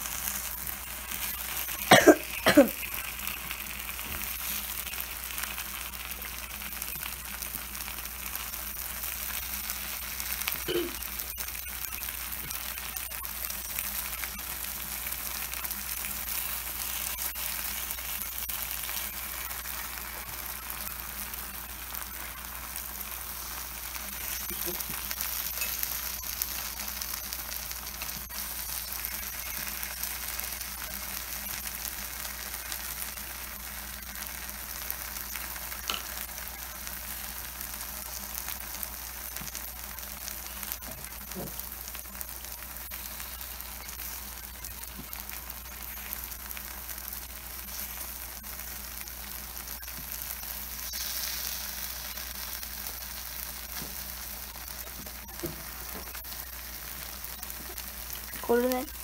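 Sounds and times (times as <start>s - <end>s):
batter sizzling on a hot plate: 0.0s - 59.0s.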